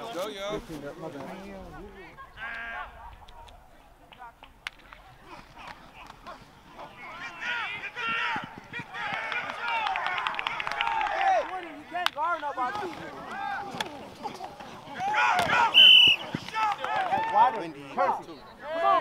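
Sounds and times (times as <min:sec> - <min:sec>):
voices shouting and yelling: 0:00.0 - 0:19.0.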